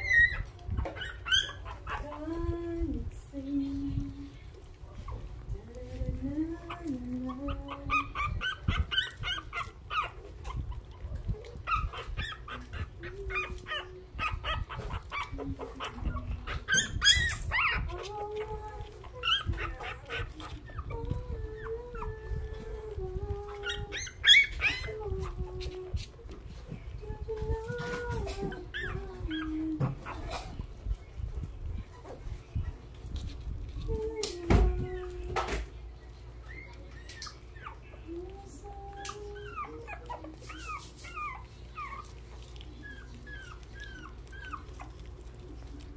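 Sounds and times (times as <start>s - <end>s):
puppies crying and whining: 0.0s - 3.3s, 4.0s - 45.9s
small clicks and rustles: 0.0s - 45.9s.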